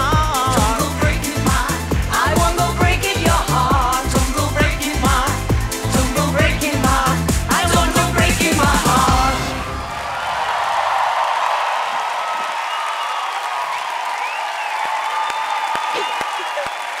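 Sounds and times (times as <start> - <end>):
pop song: 0.0 - 9.8
audience applauding and cheering: 8.7 - 17.0
whoops: 9.8 - 17.0.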